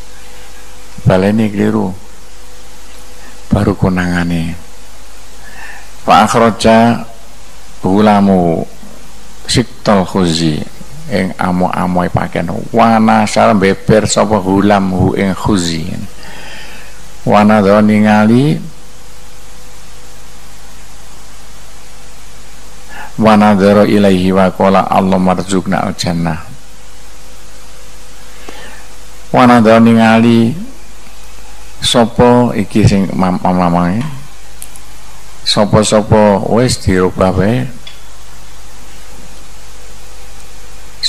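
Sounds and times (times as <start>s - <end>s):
recording hiss: 0.0s - 41.0s.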